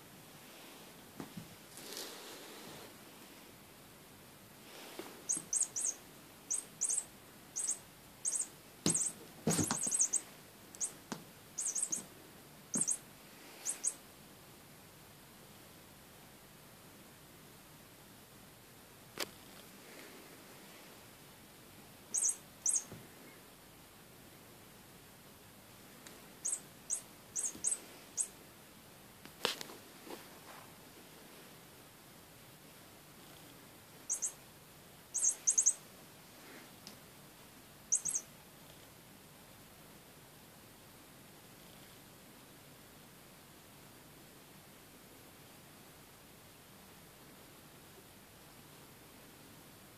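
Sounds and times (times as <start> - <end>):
high electronic chirps: 5.3 - 10.2, 11.6 - 12.0, 12.8 - 13.0, 13.6 - 14.0, 22.2 - 22.9, 26.4 - 28.3, 34.1 - 34.4, 35.2 - 35.8, 37.9 - 38.2
thumps: 8.3 - 10.2.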